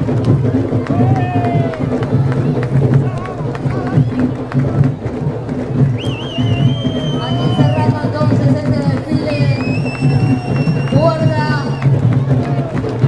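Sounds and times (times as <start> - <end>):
crowd voices: 0.0 - 13.0
live parade music: 0.0 - 13.0.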